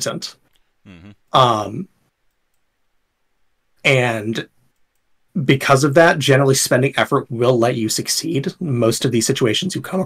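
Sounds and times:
man speaking: 0.0s - 1.9s.

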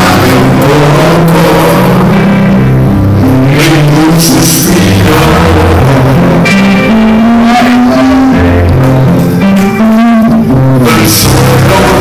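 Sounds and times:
electric bass line: 0.0s - 12.0s
live rock band playing: 0.0s - 12.0s.

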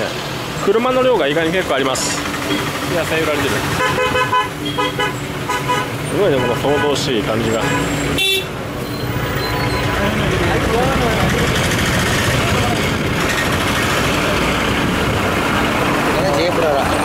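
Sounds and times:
bus running close by: 0.0s - 17.0s
traffic engines din: 0.0s - 17.0s
passers-by talking: 9.2s - 17.0s.

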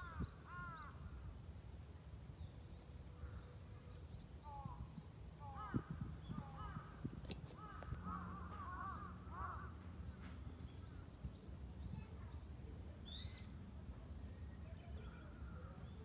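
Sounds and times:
birds calling: 0.0s - 1.1s, 3.0s - 13.6s.

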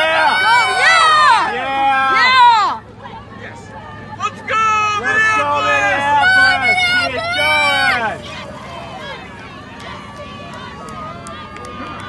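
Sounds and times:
spectators shouting: 0.0s - 12.0s.

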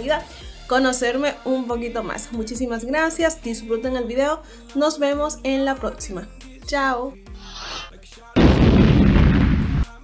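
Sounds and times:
explosion blast: 8.4s - 10.0s.

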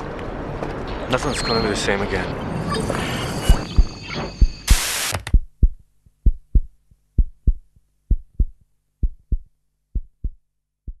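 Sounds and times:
heartbeat thuds: 3.5s - 11.0s
tv static burst: 4.6s - 5.2s.

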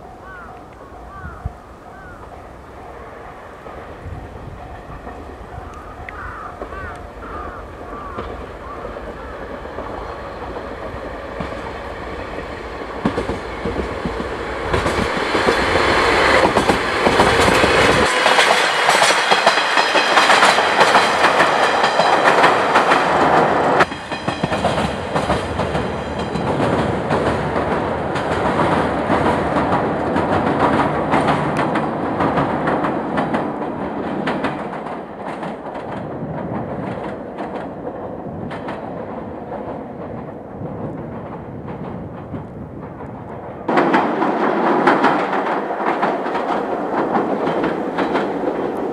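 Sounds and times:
distant train rumble: 0.0s - 48.9s
train wheels clattering over rail joints: 3.7s - 48.9s.

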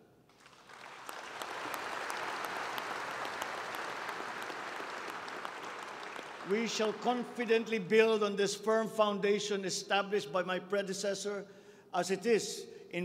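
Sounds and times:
audience applauding: 0.3s - 7.4s.

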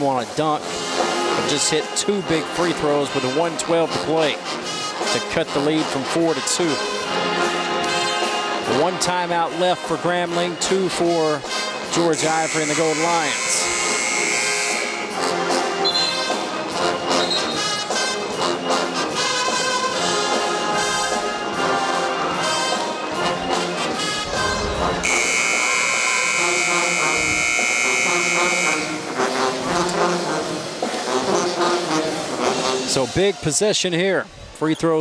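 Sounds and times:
pep band brass and drums: 0.0s - 34.1s
arena crowd noise: 5.1s - 35.0s
loud held high tone: 12.2s - 15.2s, 24.2s - 29.2s.

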